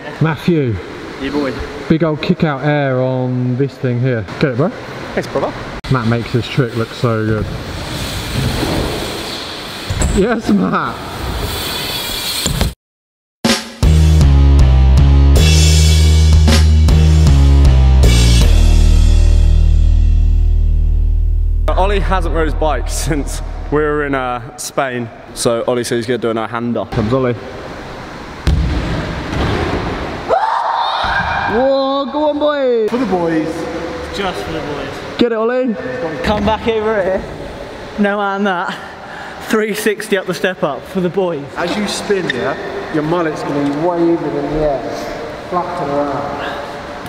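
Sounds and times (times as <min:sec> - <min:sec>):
bike tyres rolling on plywood: 0:07.3 - 0:10.2.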